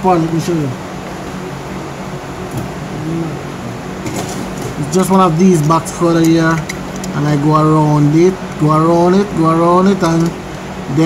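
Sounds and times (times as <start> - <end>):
fan-like hiss: 0.0 - 11.0
faint low voice: 3.0 - 3.5.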